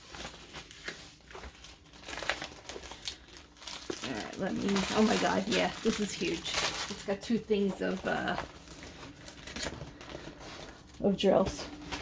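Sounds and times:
canvas and plastic sheet rustling: 0:00.0 - 0:12.0.

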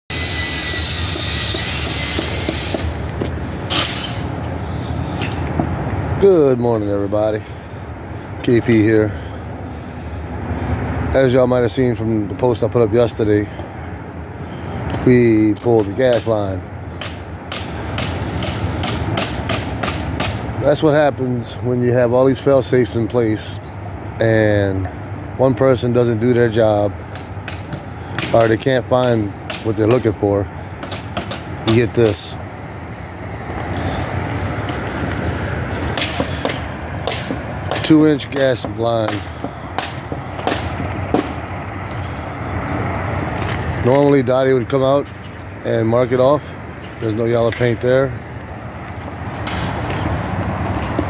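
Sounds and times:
outdoor background noise: 0:00.1 - 0:51.0
hammering: 0:00.7 - 0:03.0, 0:17.0 - 0:20.4
low engine hum: 0:24.8 - 0:51.0.

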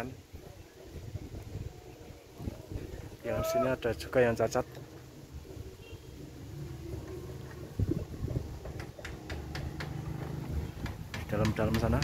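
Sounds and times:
light knocks: 0:08.6 - 0:12.0.

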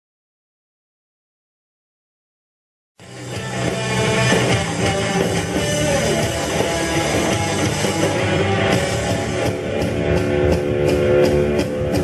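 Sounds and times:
drum kit: 0:03.0 - 0:12.0
electric guitar: 0:03.0 - 0:12.0.

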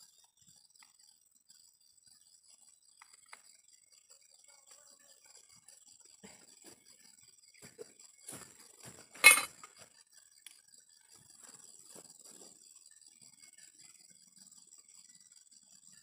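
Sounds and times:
sharp clink: 0:09.2 - 0:09.7.

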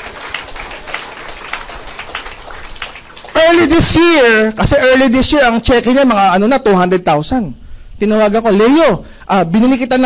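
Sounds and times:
audience clapping: 0:00.0 - 0:04.4.

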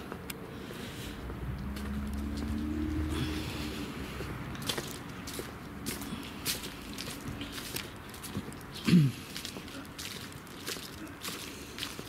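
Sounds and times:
vehicle engine hum: 0:00.0 - 0:12.0
footsteps on dry leaves: 0:00.6 - 0:12.0.

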